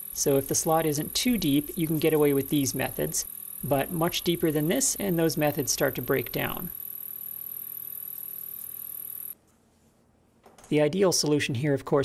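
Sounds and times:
milling spindle whine: 0:00.0 - 0:09.4.

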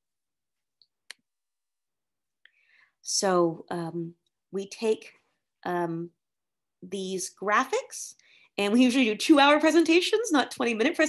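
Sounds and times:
faint breath: 0:02.5 - 0:03.0.

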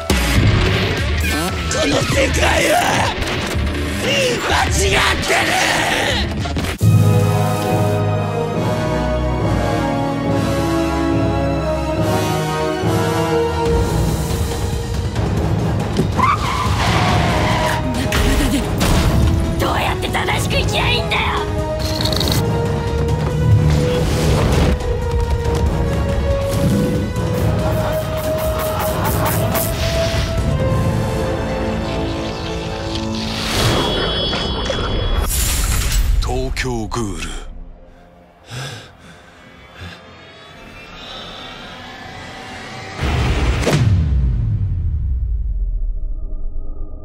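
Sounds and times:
trailer music drone: 0:06.4 - 0:47.0
car tyres screeching: 0:16.2 - 0:17.9.

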